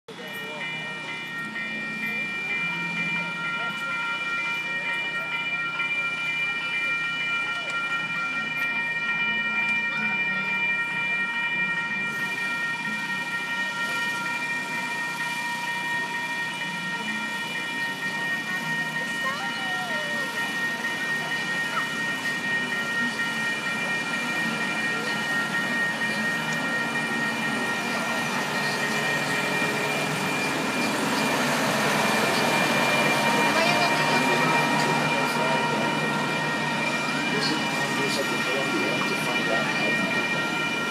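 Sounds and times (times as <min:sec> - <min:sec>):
railroad crossing warning signal: 0:00.1 - 0:40.9
train wheel noise: 0:00.1 - 0:40.9.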